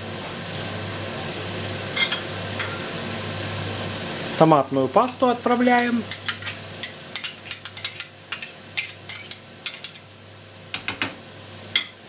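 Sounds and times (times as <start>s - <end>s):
vegetables frying in a pan: 0.0s - 12.0s.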